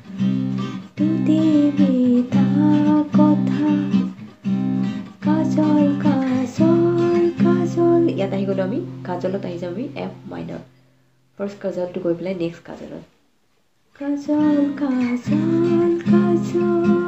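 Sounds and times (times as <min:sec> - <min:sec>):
acoustic guitar strumming: 0:00.0 - 0:11.0, 0:14.0 - 0:17.0
woman singing: 0:00.9 - 0:04.1, 0:05.2 - 0:10.7, 0:14.0 - 0:17.0.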